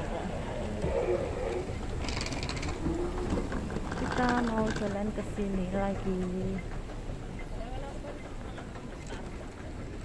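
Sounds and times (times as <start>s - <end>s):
low terminal rumble: 0.0s - 10.0s.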